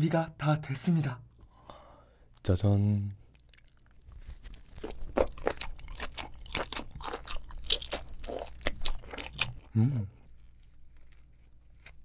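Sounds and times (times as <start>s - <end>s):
wet crunchy chewing: 3.3s - 9.7s.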